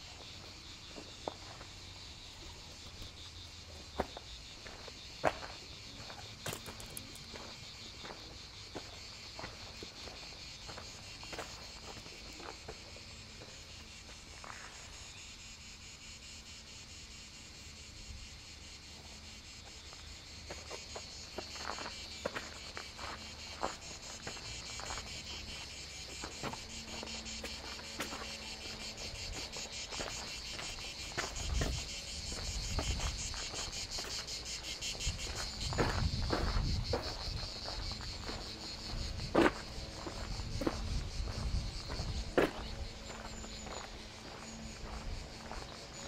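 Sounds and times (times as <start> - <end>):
cicadas singing: 0.0 - 46.0
footsteps on gravel path: 0.2 - 2.0, 2.8 - 14.8, 20.0 - 46.0.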